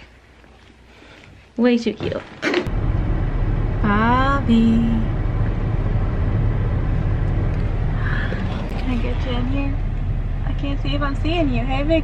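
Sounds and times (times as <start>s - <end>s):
car engine rumble inside cabin: 2.7s - 12.0s.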